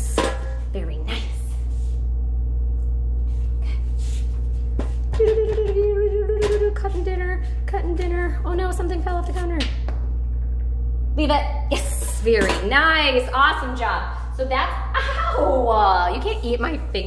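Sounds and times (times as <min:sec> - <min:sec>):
low electrical hum: 0:00.0 - 0:17.0
woman humming a tune: 0:05.1 - 0:08.1.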